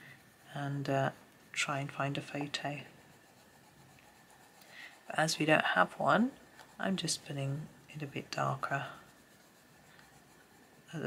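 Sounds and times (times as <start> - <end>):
pencil scratching on paper: 0.0 - 11.0.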